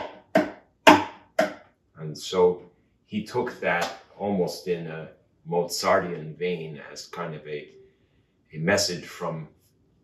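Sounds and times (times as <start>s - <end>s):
knocks on wooden guitar body: 0.0s - 1.6s.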